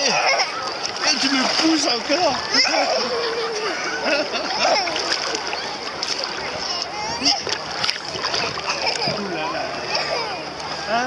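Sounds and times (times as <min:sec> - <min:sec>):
water splashing and sloshing: 0:00.0 - 0:11.0.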